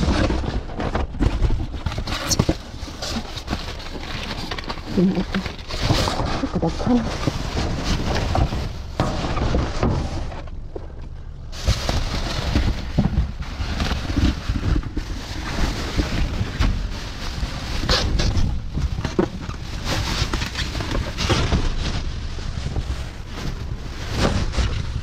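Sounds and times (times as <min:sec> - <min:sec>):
plastic bags rustling: 0:00.0 - 0:25.0.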